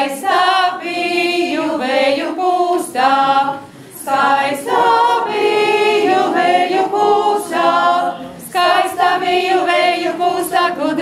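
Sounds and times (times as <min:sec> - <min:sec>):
women's choir singing folk song: 0:00.0 - 0:11.0.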